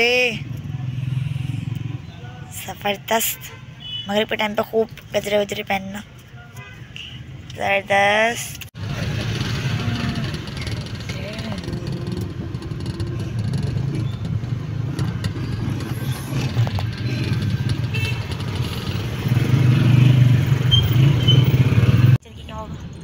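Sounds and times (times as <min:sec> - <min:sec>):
car engine and road noise: 0:00.0 - 0:23.0.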